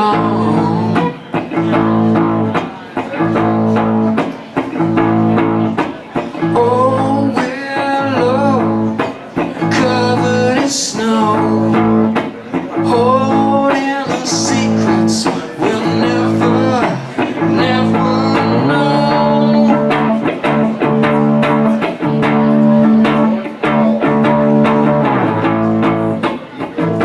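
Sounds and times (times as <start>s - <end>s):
man singing: 0.0s - 4.0s, 5.0s - 25.4s
electric guitar chords strummed: 0.0s - 27.0s.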